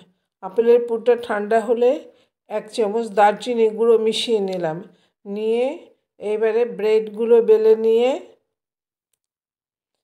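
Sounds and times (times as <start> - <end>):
woman narrating: 0.0 - 8.5.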